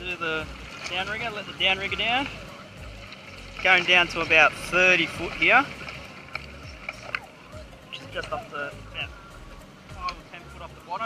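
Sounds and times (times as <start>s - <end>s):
boat and water rumble: 0.0s - 11.0s.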